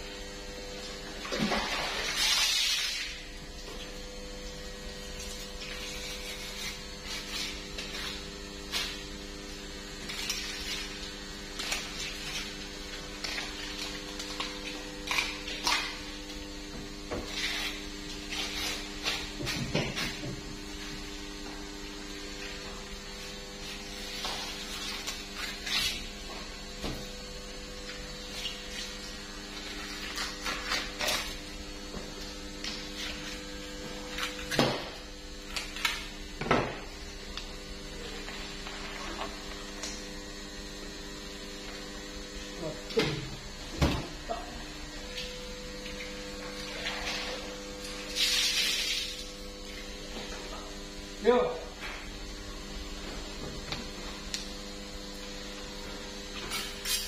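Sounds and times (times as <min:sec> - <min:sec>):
steady hum: 0:00.0 - 0:57.0
knife scraping and slicing fish: 0:05.4 - 0:09.1, 0:17.2 - 0:20.2, 0:23.6 - 0:26.2.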